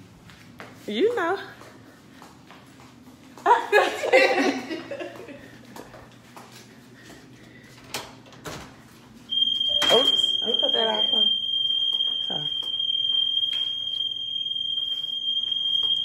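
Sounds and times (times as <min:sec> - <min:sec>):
high-pitched electronic alarm tone: 0:09.3 - 0:16.0.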